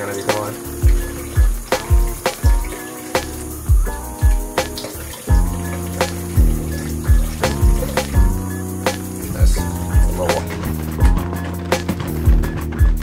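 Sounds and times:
music with a steady beat: 0:00.0 - 0:13.0
deep kick drums: 0:00.4 - 0:13.0.

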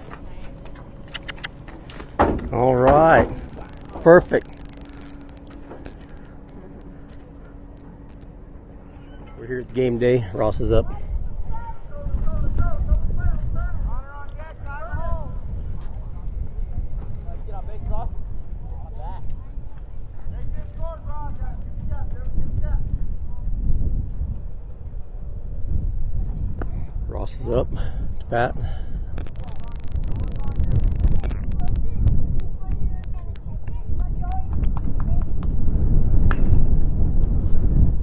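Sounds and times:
wind rumbling on microphone: 0:00.0 - 0:38.0
distant people talking: 0:02.8 - 0:23.6.

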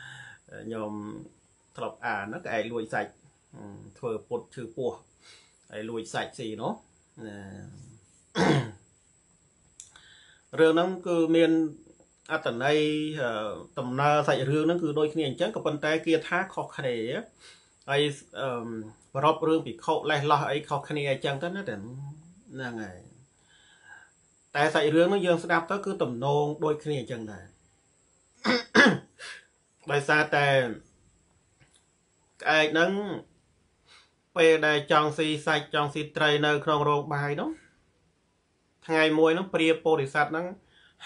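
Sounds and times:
man talking: 0:00.0 - 0:05.1, 0:05.7 - 0:08.8, 0:10.6 - 0:23.2, 0:24.6 - 0:27.5, 0:28.4 - 0:30.9, 0:32.4 - 0:33.3, 0:34.4 - 0:37.7, 0:38.8 - 0:40.6
man clearing his throat: 0:08.4 - 0:08.8, 0:28.4 - 0:29.4.

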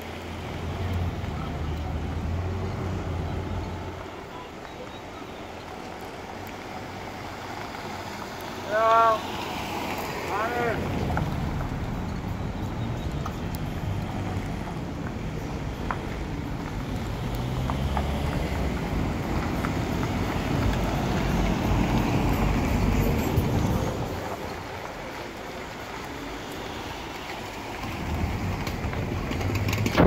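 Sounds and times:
slow car engines running: 0:00.0 - 0:30.0.

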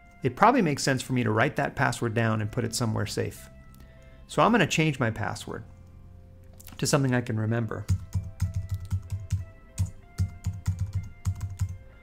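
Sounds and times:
faint background music: 0:00.0 - 0:12.0
keyboard typing clicks: 0:07.9 - 0:11.8.

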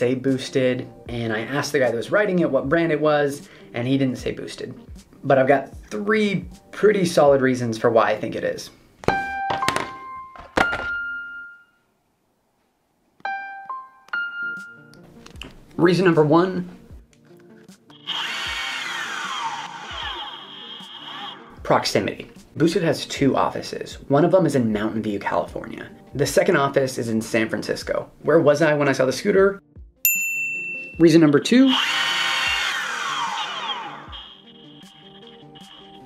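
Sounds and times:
background music: 0:00.0 - 0:11.7, 0:13.2 - 0:36.0
skateboard wheel spinning: 0:18.0 - 0:21.5, 0:31.7 - 0:36.0.

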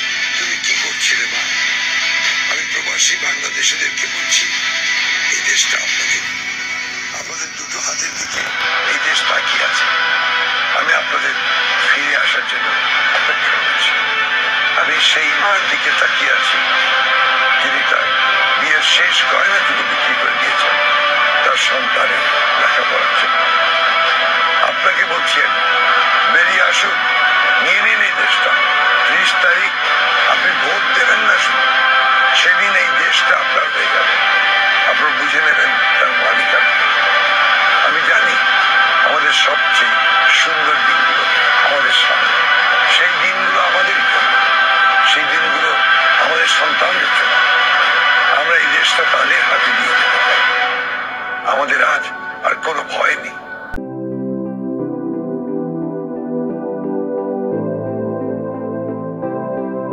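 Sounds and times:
background music: 0:00.0 - 0:59.9
man speaking: 0:00.4 - 0:01.5, 0:02.5 - 0:04.6, 0:05.3 - 0:06.3, 0:07.2 - 0:09.9, 0:10.8 - 0:13.9, 0:14.8 - 0:16.7, 0:17.6 - 0:20.8, 0:24.6 - 0:25.6, 0:30.3 - 0:31.6, 0:37.8 - 0:42.2, 0:42.9 - 0:44.4, 0:45.1 - 0:47.3, 0:48.3 - 0:50.4, 0:51.5 - 0:53.4.

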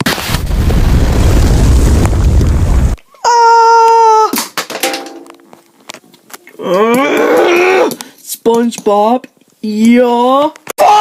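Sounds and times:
explosion blast and rumble: 0:00.0 - 0:03.0.

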